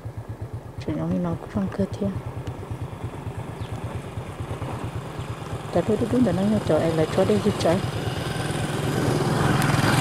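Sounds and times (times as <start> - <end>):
small engine idling: 0.0 - 10.0.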